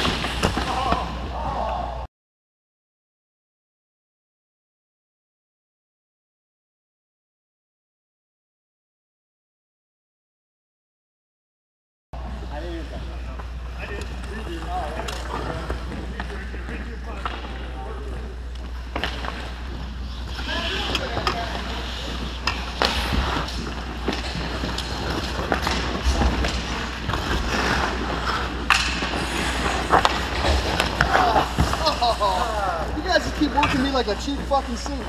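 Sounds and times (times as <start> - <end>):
hockey sticks and puck clacking: 0.0 - 1.8, 12.9 - 35.0
steady low hum: 12.2 - 35.0
skates scraping on ice: 14.0 - 35.0.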